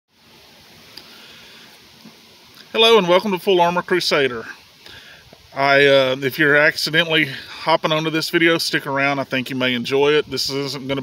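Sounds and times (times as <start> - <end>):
faint steady hiss: 0.1 - 11.0.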